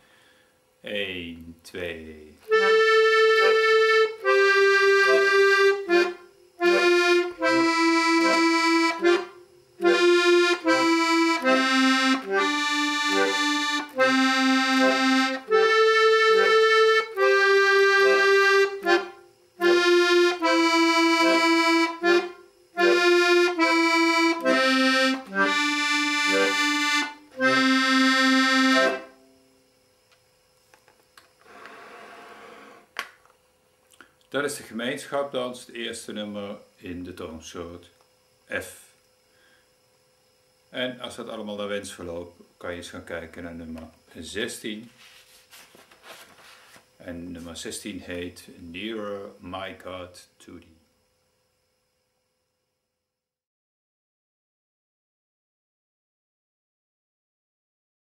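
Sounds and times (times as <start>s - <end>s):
accordion bass notes: 2.4s - 29.2s
accordion melody: 2.4s - 29.2s.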